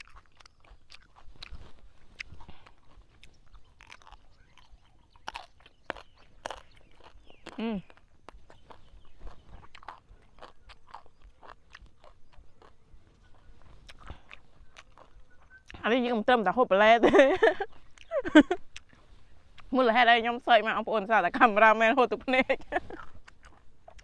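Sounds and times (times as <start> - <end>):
crunchy food being chewed: 0.0 - 16.6, 17.4 - 19.8, 22.6 - 24.0.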